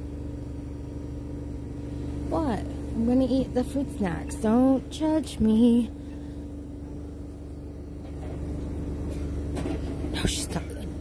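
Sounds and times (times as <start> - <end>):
steady machine hum: 0.0 - 11.0.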